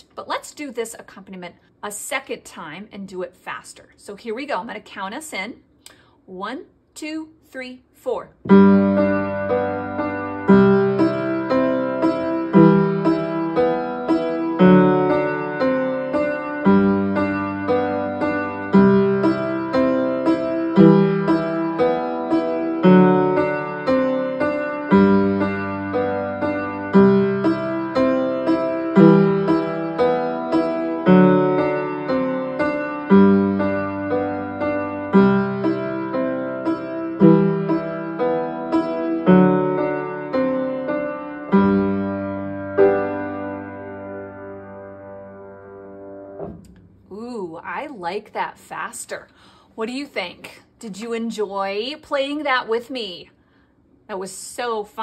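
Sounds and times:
upright piano playing: 8.5 - 47.2.

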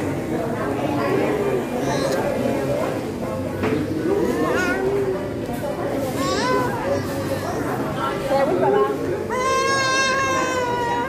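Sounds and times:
adults talking: 0.0 - 11.0.

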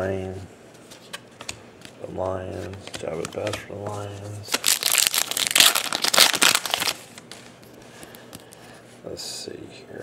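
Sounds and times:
foil wrapper crinkling: 4.5 - 7.3.

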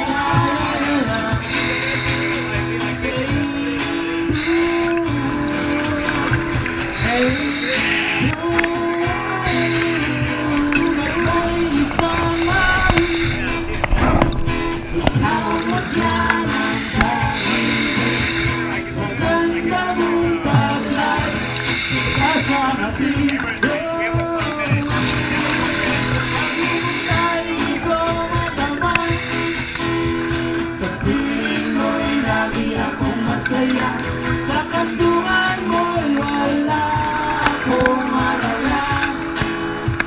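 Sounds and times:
high percussion: 0.0 - 40.0
sustained bass notes: 1.5 - 23.4.

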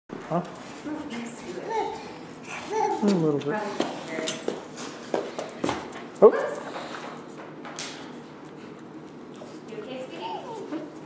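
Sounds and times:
footsteps on hard floor: 3.1 - 6.0.

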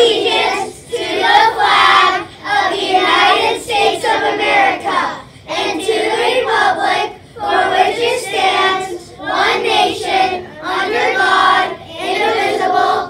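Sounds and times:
children reciting in unison: 0.0 - 13.0.

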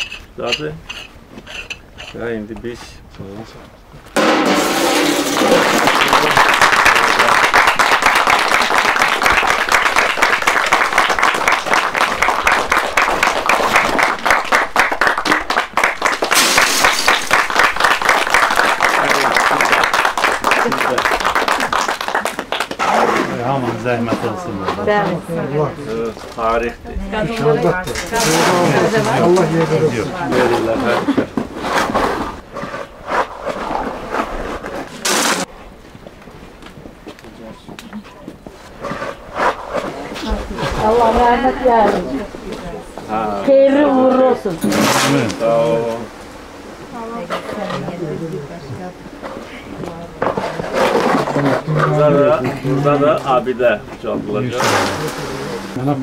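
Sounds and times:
shovel scraping mortar: 0.0 - 2.2, 4.2 - 5.9, 31.6 - 35.5, 44.6 - 45.4, 54.6 - 55.7
people talking at once: 23.3 - 31.3, 40.0 - 46.1.

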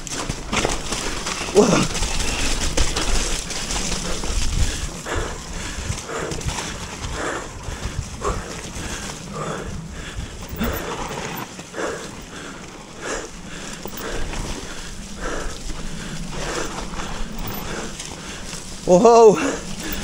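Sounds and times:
tyres rumbling on muddy trail: 0.0 - 20.0
person breathing hard: 0.1 - 20.0
wind on microphone: 1.9 - 11.4.

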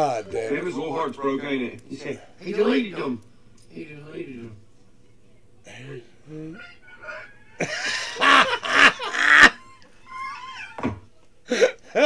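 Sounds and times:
loud laughter: 6.6 - 12.0.

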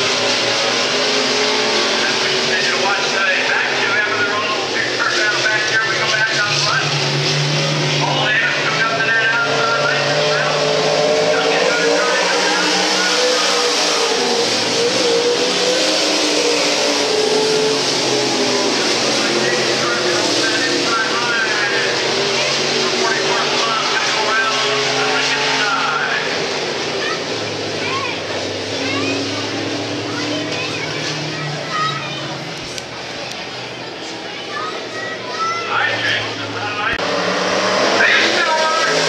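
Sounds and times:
race car engines revving: 0.0 - 39.0.

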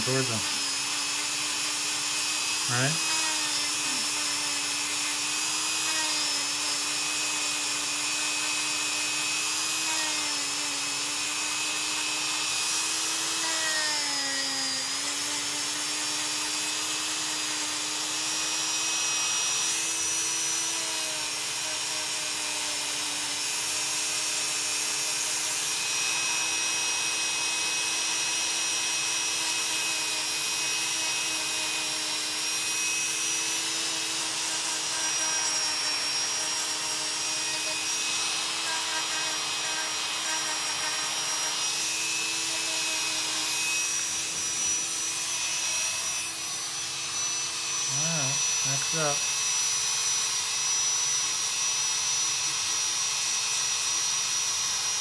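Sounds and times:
electric nail drill whining: 0.0 - 55.0.

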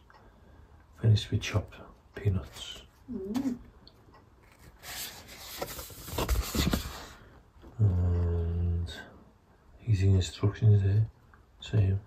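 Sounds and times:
cardboard rustling in hands: 4.4 - 7.2.

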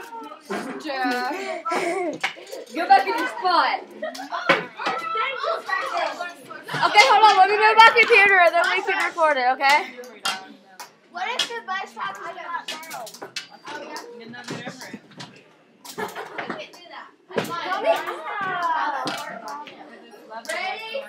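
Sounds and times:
girls chattering and calling: 0.0 - 15.1, 15.8 - 21.0.

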